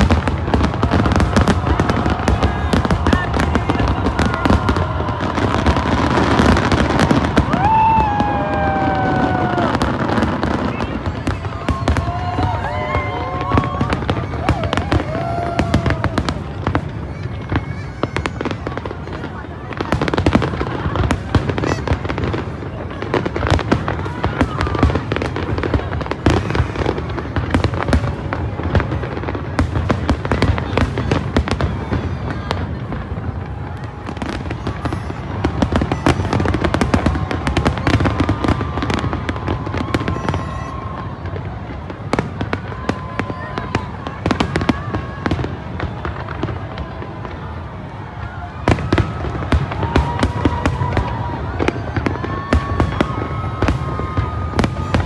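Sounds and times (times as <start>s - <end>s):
crowd voices: 0.0s - 55.0s
fireworks bursting: 0.0s - 55.0s
fireworks crackle: 0.0s - 55.0s.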